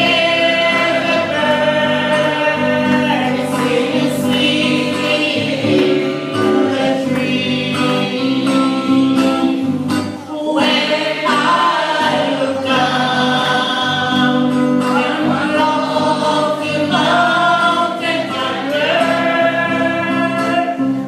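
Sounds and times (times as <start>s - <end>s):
group singing gospel music: 0.0s - 21.0s.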